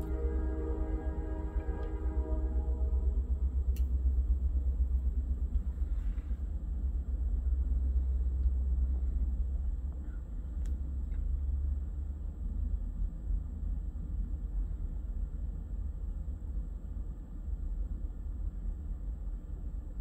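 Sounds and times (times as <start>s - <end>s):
train horn: 0.0s - 3.7s
freight train rumbling past: 0.0s - 20.0s.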